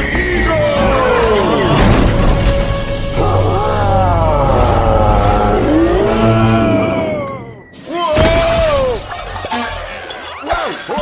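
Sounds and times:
crash with shattering: 8.2 - 11.0.

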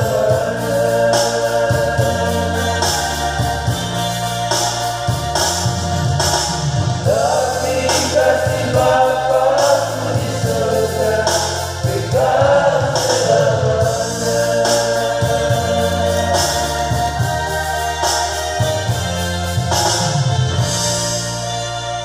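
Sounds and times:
electronic keyboard: 0.0 - 22.0
men singing gospel in harmony: 0.0 - 22.0.

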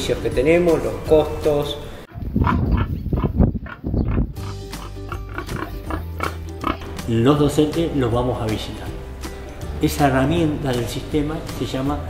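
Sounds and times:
background music: 0.0 - 2.2, 3.7 - 12.0
pig grunting: 2.4 - 7.0.

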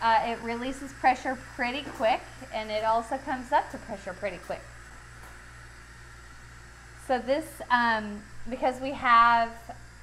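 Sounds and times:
steam venting hiss: 0.0 - 10.0.

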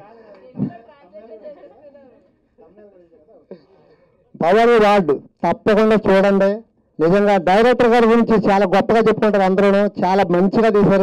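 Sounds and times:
quiet chatter of voices: 0.0 - 5.0.

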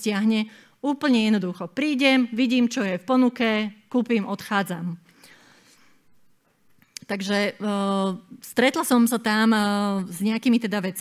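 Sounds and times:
soft breath: 5.1 - 6.2.

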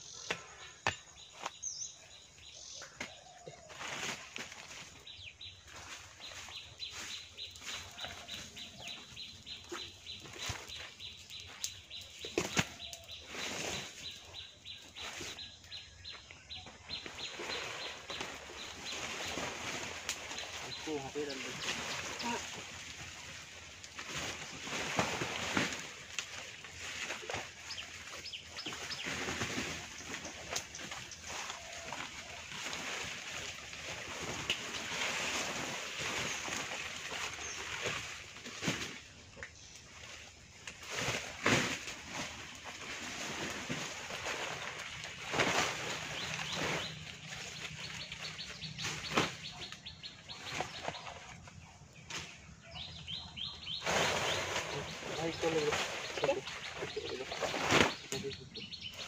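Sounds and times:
dry leaves rustling and crackling: 2.5 - 16.2, 16.9 - 59.0.

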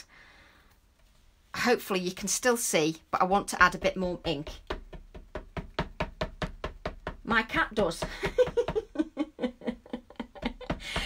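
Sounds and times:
woman laughing softly: 8.1 - 11.0.

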